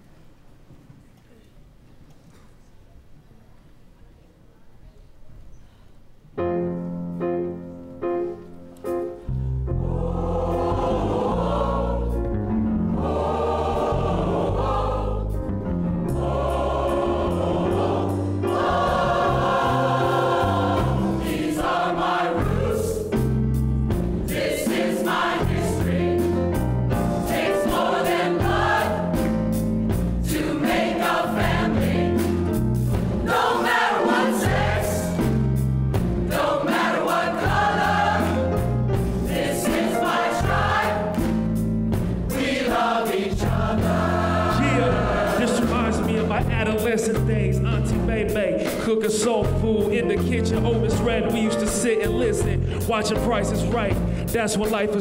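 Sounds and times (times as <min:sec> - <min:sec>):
mixed choir singing: 0:09.6 - 0:23.4, 0:24.1 - 0:32.6, 0:33.2 - 0:35.4, 0:36.2 - 0:41.6, 0:42.2 - 0:46.4.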